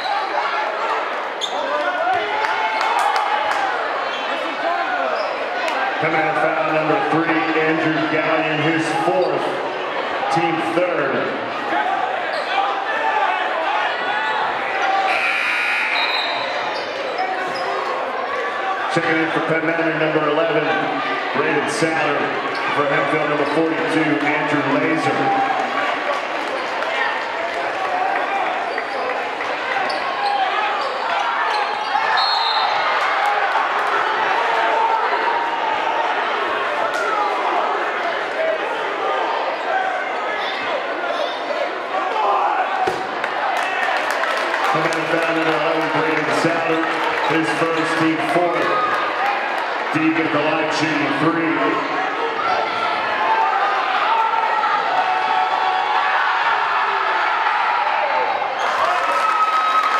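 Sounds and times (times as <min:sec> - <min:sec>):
echoing crowd chatter: 0:00.0 - 0:59.9.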